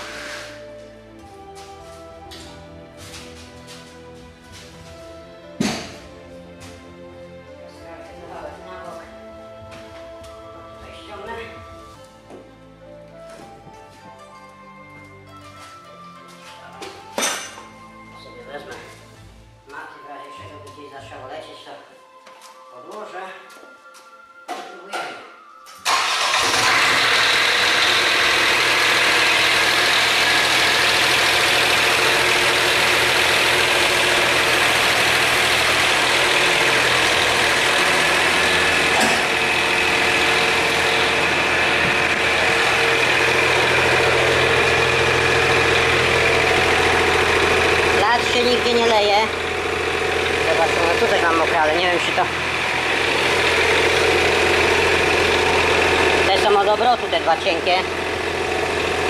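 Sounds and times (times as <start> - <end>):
excavator engine running: 25.8 - 59.0.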